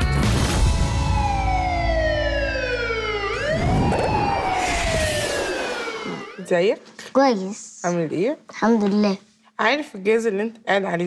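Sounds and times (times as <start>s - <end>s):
siren-like gliding tone: 1.1s - 6.5s.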